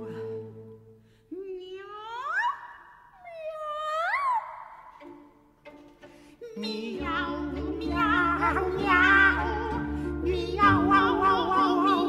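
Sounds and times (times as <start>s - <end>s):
operatic soprano singing: 0.0s - 5.0s, 6.3s - 12.0s.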